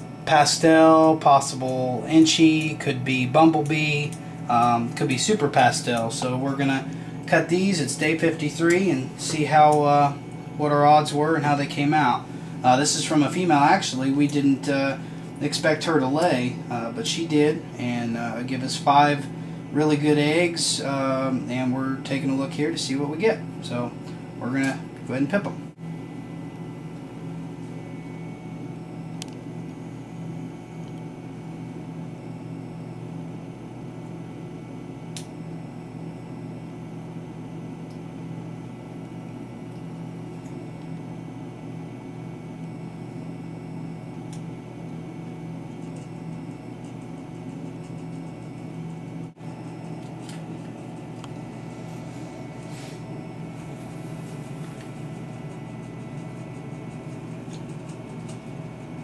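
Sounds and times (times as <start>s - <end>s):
low machine hum: 0.0s - 59.0s.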